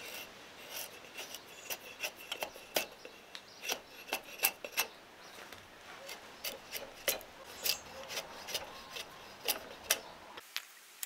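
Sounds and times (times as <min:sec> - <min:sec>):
drawknife scraping wood: 0:00.0 - 0:05.0, 0:05.9 - 0:10.2.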